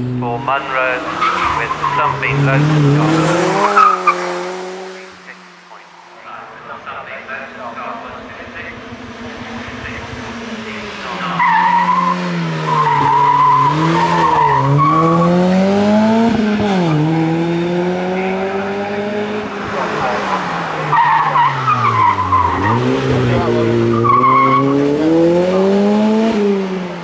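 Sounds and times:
car engine revving hard: 0.0 - 5.6, 6.2 - 27.0
tyres squealing: 0.2 - 4.3, 9.6 - 15.4, 18.2 - 24.9.

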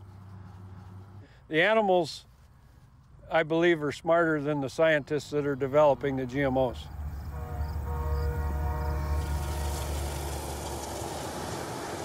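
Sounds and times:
train horn blast: 7.2 - 10.5.

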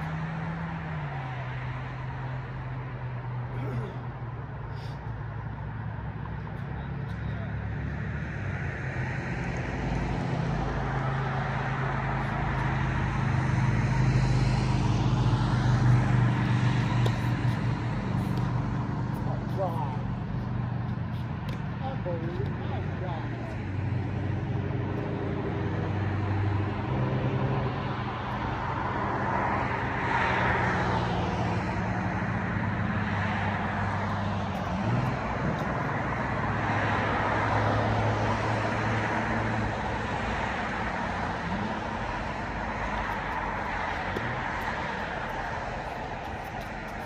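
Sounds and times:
steady low traffic hum: 0.0 - 47.0
vehicles passing: 0.0 - 47.0.

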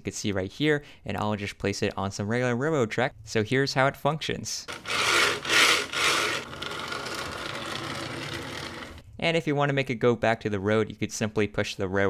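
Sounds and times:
model wheels scraping on rails: 4.7 - 9.0.

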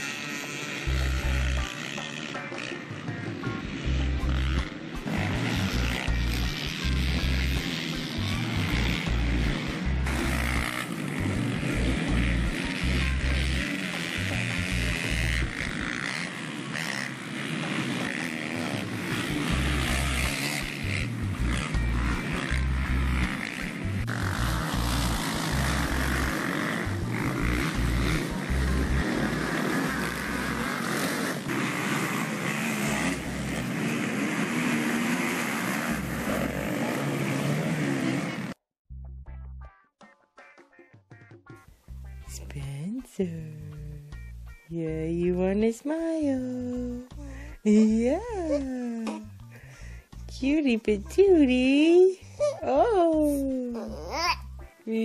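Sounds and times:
dirt bike engines running: 0.0 - 38.6
background music with bass line: 0.4 - 15.9, 19.0 - 30.7, 38.9 - 55.0.

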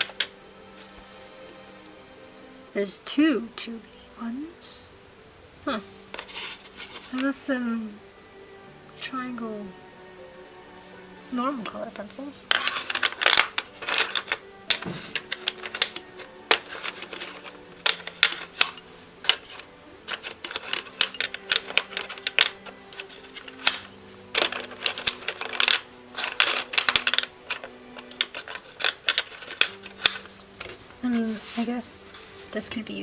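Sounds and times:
wooden pencils clicking and rattling: 0.0 - 1.1, 6.1 - 7.6, 11.2 - 33.0.

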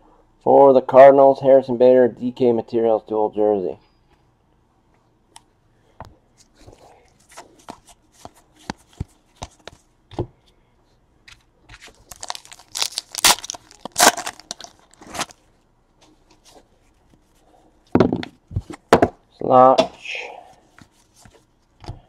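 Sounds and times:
card pack wrapper tearing: 11.8 - 15.4.

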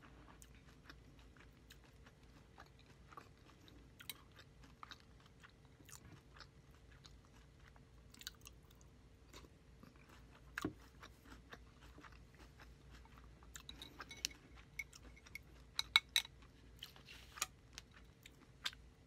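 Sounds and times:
chewing crunchy cereal: 0.0 - 19.0
faint steady hum: 0.0 - 19.0.

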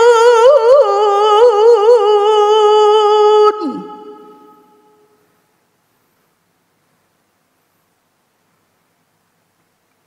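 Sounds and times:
person reciting in long high note: 0.0 - 5.2.

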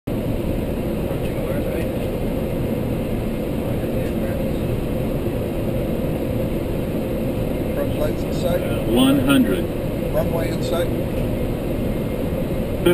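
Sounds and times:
airflow and engines rumbling: 0.1 - 12.9.

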